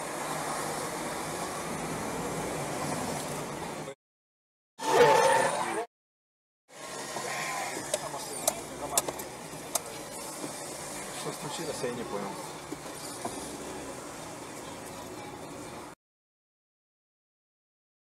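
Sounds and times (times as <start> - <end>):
traffic and engine noise: 0.0 - 4.0, 4.8 - 5.9, 6.7 - 16.0.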